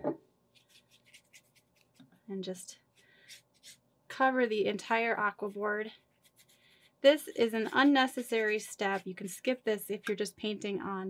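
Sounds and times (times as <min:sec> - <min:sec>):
wet brush strokes on board: 0:04.9 - 0:09.6.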